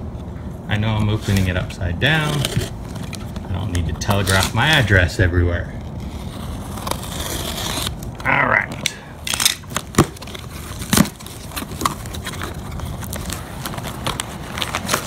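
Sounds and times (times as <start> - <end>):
bubble wrap crinkling: 2.2 - 5.1, 5.9 - 8.2, 9.2 - 15.0
utility knife slitting packing tape: 6.2 - 8.0, 9.2 - 15.0.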